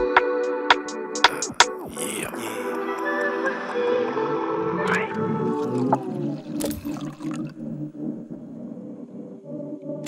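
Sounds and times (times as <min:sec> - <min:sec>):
sustained low synth tones: 0:04.4 - 0:10.0.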